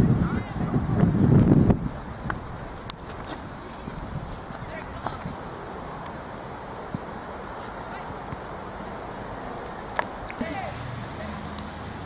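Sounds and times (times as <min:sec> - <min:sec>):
distant voices of players and spectators: 0:00.0 - 0:12.0
low outdoor noise: 0:00.0 - 0:12.0.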